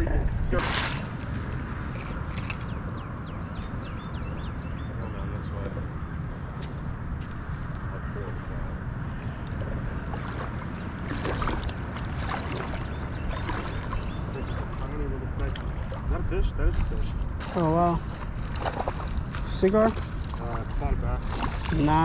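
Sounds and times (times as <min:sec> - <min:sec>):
water sloshing around legs: 0:09.5 - 0:22.0
bird calling: 0:12.4 - 0:16.0.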